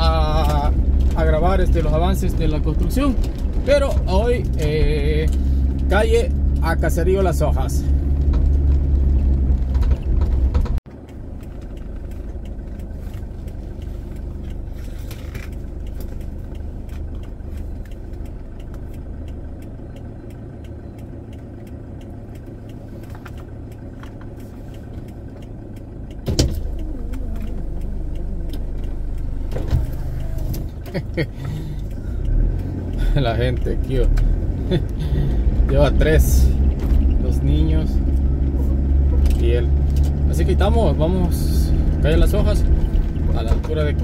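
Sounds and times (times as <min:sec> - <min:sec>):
car driving on dirt road: 0:00.0 - 0:44.0
car idling: 0:00.0 - 0:44.0
motorcycle approaching: 0:00.0 - 0:44.0.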